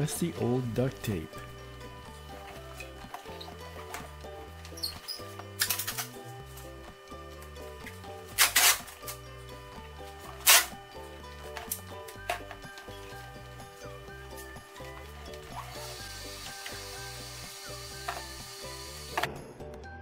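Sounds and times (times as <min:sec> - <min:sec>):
duct tape ripping off roll: 0:04.7 - 0:06.2, 0:08.3 - 0:09.2, 0:10.3 - 0:10.8.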